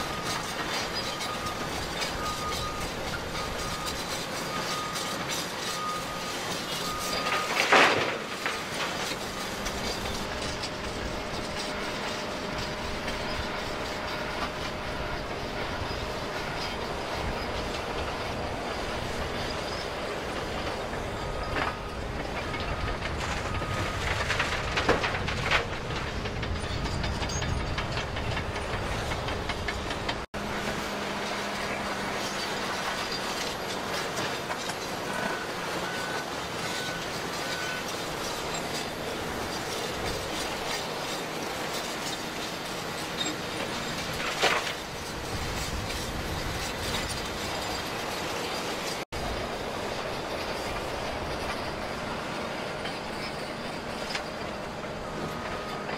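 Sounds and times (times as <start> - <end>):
diesel machinery running: 0.0 - 55.9.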